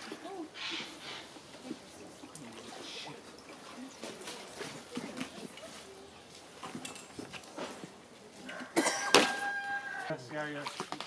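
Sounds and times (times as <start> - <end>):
faint voices: 0.0 - 10.8
stream water splashing: 0.0 - 11.0.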